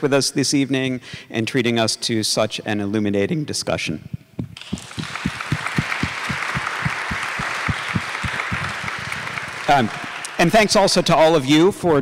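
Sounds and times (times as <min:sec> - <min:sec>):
hand claps close to microphone: 0:04.4 - 0:10.4
audience applauding: 0:04.6 - 0:11.0.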